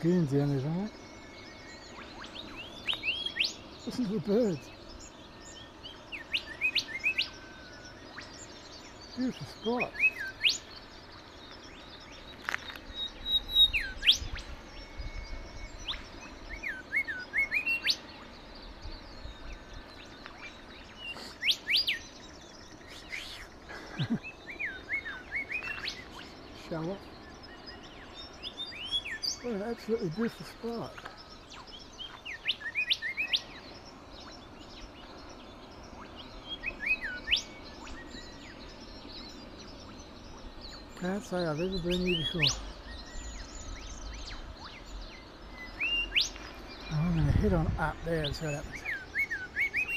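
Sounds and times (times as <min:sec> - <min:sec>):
background hiss: 0:00.0 - 0:49.9
birds whistling calls: 0:00.0 - 0:49.9.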